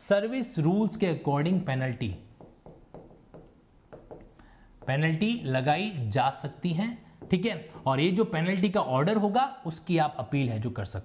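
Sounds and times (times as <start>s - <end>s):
marker writing on whiteboard: 1.4s - 7.8s.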